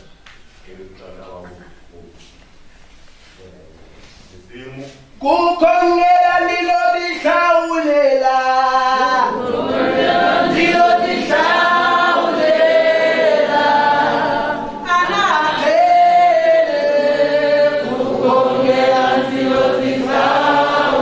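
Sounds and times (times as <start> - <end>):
congregation singing a hymn: 5.6 - 21.0.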